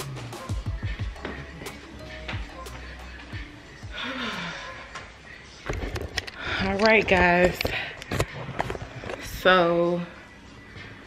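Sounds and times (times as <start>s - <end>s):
woman speaking: 6.5s - 7.9s, 9.2s - 10.2s.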